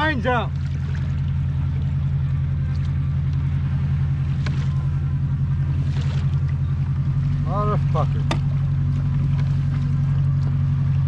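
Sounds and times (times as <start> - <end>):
boat engines droning: 0.0 - 11.0.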